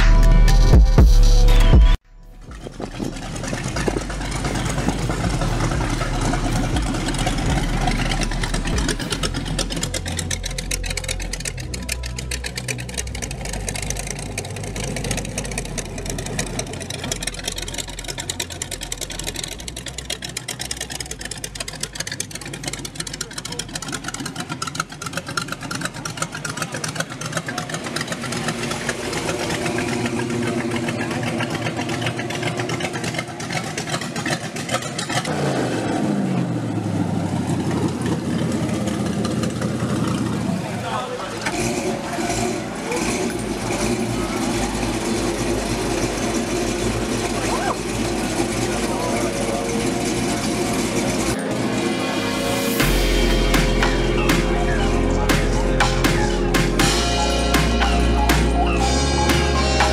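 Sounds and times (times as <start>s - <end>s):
car engines rumbling: 0.0s - 59.9s
people talking: 4.1s - 9.4s, 23.0s - 24.4s, 25.8s - 32.2s, 40.2s - 51.6s, 52.6s - 59.9s.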